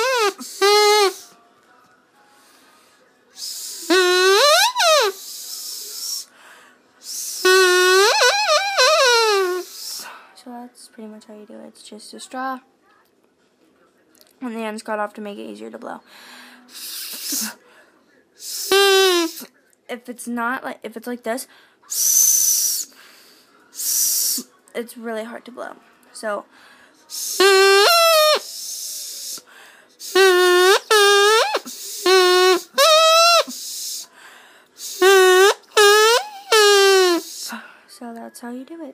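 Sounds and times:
drinking-straw reed buzzy honks: 0.0s - 1.2s, 3.4s - 5.2s, 7.3s - 9.7s, 18.6s - 19.4s, 27.2s - 28.5s, 30.0s - 34.0s, 34.8s - 37.4s.

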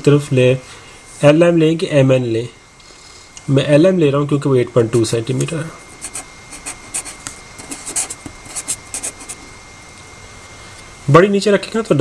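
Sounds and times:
felt-tip pen writing on paper: 5.9s - 9.4s.

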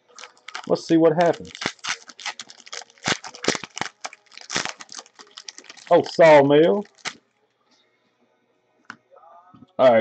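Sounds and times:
foil wrapper crinkling: 0.0s - 7.2s.

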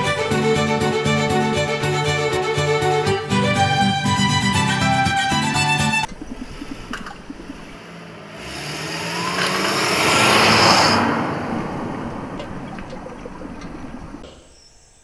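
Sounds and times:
car driving past: 6.1s - 14.2s.

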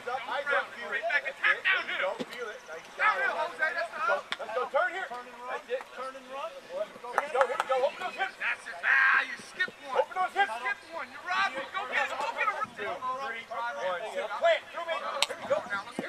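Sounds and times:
men talking and calling out: 0.0s - 16.0s.

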